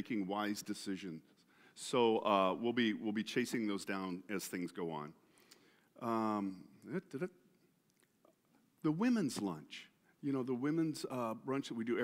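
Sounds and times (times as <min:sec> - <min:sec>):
man speaking: 0:00.0 - 0:05.2, 0:06.0 - 0:07.6, 0:08.8 - 0:12.0.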